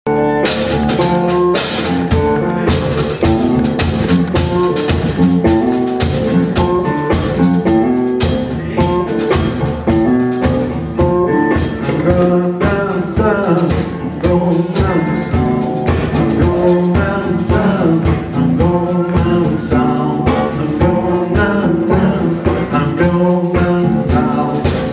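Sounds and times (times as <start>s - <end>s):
drums keeping a steady beat: 0.1s - 24.9s
electric blues guitar: 0.1s - 24.9s.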